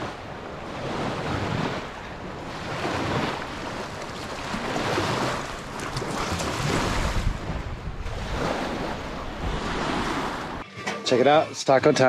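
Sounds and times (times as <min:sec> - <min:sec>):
waves lapping on shore: 0:00.0 - 0:10.6
wind on microphone: 0:00.0 - 0:10.6.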